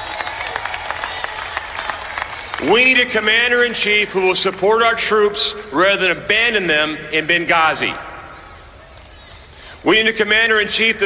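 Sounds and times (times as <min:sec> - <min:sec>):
crowd applauding: 0:00.0 - 0:03.4.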